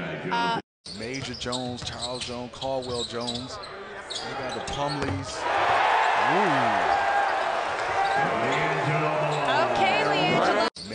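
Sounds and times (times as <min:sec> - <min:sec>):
arena crowd hubbub: 0:03.5 - 0:10.7.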